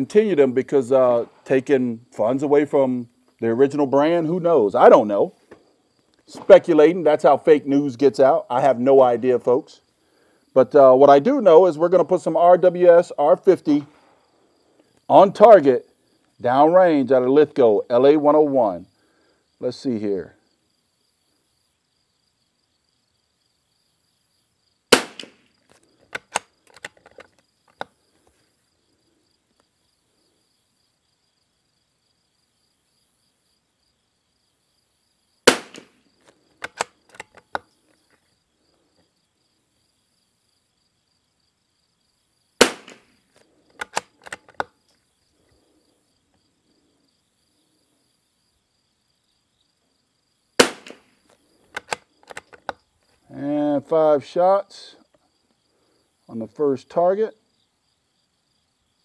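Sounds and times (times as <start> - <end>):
rifle shots: 24.9 - 25.4, 35.5 - 36.0, 42.6 - 43.2, 50.6 - 51.2
rifle bolt clicking: 26.1 - 27.9, 36.6 - 37.7, 43.7 - 44.7, 51.7 - 52.8.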